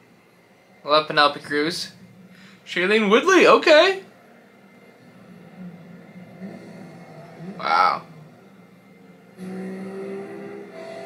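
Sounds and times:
car engine drone: 0:00.0 - 0:11.0
low steady hum: 0:00.0 - 0:11.0.

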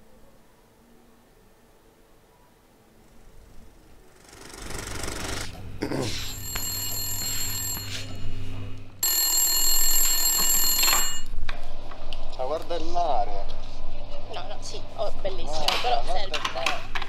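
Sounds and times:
telephone bell ringing: 0:06.2 - 0:11.3.

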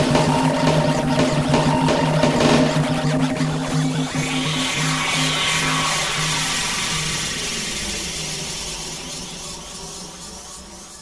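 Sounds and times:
low pulsing drone: 0:00.0 - 0:08.6.

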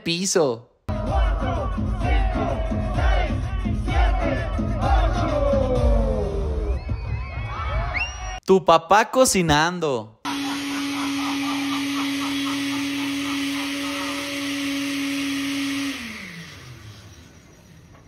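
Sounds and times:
blender motor running: 0:10.3 - 0:18.0.

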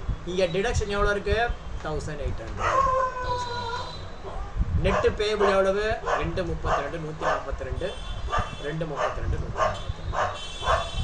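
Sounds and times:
dog barking: 0:02.6 - 0:03.2, 0:04.2 - 0:07.5, 0:08.3 - 0:11.0.

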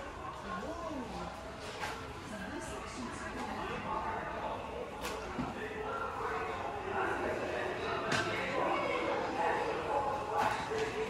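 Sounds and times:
background voices talking: 0:00.0 - 0:11.0.

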